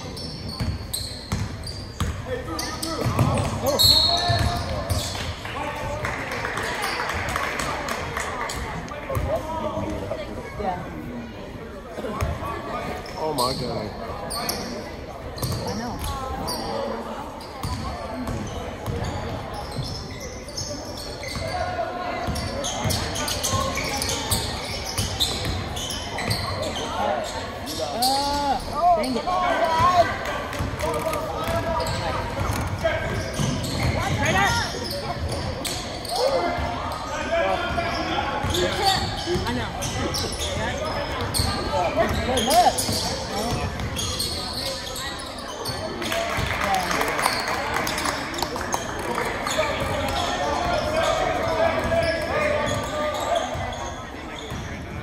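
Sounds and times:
sneakers squeaking: 0:00.0 - 0:10.9, 0:11.9 - 0:55.0.

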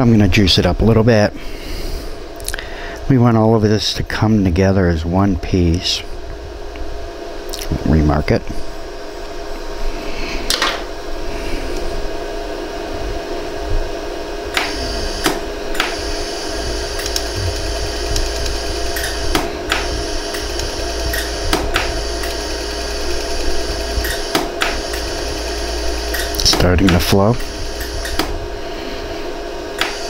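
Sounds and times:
machine humming: 0:00.0 - 0:30.0
laser welder pulse clicks: 0:14.5 - 0:28.4, 0:29.8 - 0:30.0.

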